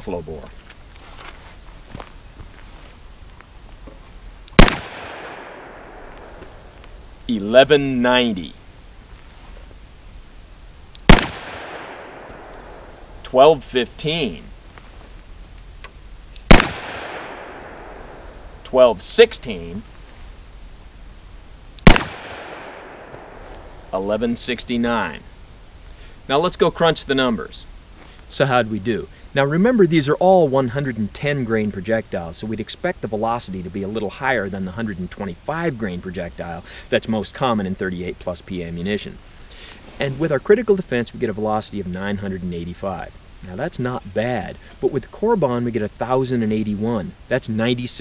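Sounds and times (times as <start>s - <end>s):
revolver gunshot with echo: 4.6s - 6.7s, 11.1s - 13.0s, 16.5s - 18.4s, 21.8s - 23.8s.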